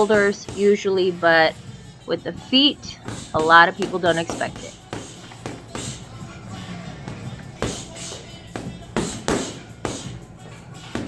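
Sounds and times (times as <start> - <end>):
background music: 0.0 - 11.0
boxing gloves thudding heavy bag: 3.0 - 11.0.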